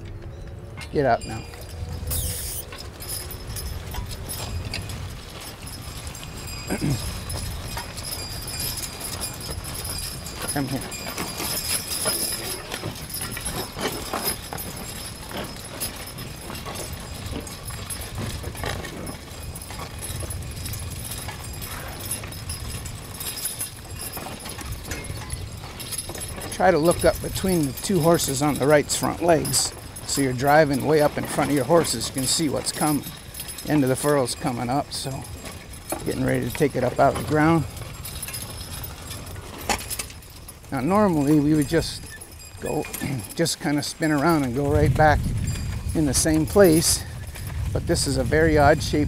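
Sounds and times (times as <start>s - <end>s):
harness and plow rattling: 0.0s - 49.0s
hooves falling: 0.0s - 49.0s
horse hoofbeats walking: 0.0s - 49.0s.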